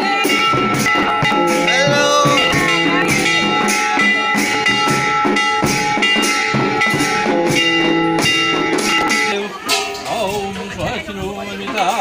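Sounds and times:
music with steady drum beat: 0.0 - 12.0.

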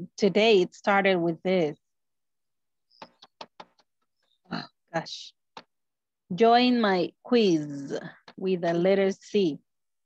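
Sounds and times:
keyboard key taps: 3.0 - 3.9.

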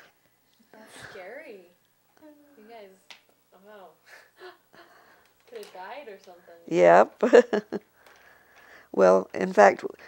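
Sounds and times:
woman laughing quietly: 4.1 - 5.2, 7.2 - 7.9.

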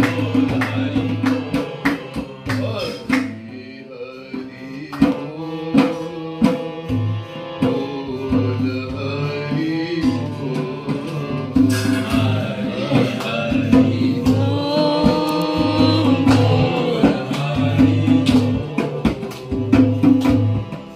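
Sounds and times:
dholak drum strokes: 0.0 - 20.9
harmonium chords: 0.0 - 20.9
person singing: 0.0 - 20.9.

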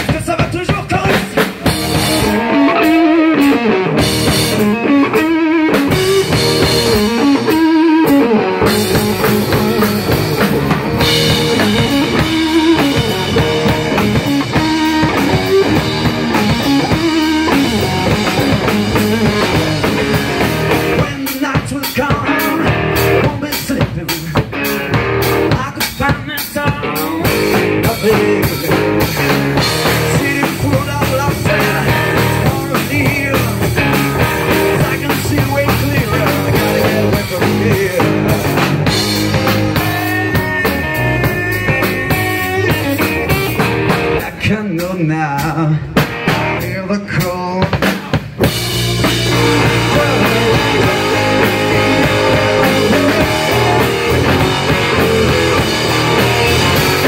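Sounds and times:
drum kit beat: 0.0 - 57.0
electric guitar: 0.0 - 57.0
live rock band: 0.0 - 57.0.

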